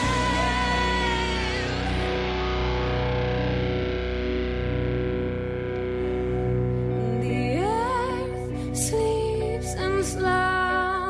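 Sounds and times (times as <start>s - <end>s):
instrumental music with held chords: 0.0s - 11.0s.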